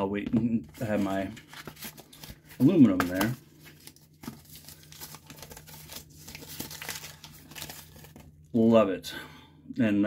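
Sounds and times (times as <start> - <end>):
rustling and crinkling packaging: 0.6 - 8.5.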